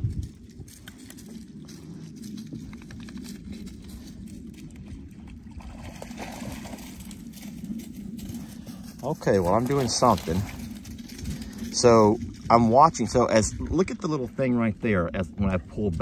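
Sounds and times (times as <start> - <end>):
boat motor rumbling: 1.2 - 16.0
water splashing: 4.7 - 7.9, 9.1 - 14.4.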